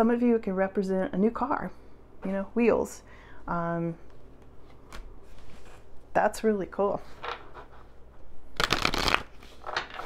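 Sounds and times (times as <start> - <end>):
cards being shuffled: 8.6 - 10.0.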